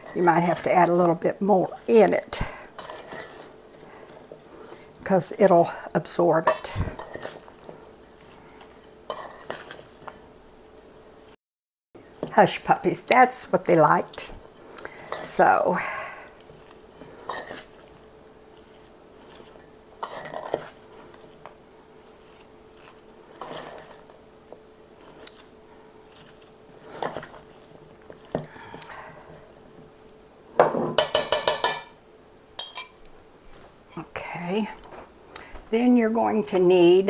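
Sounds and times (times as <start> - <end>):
spoon scraping metal bowl: 2.3 - 4.4, 8.1 - 10.2, 16.4 - 24.3.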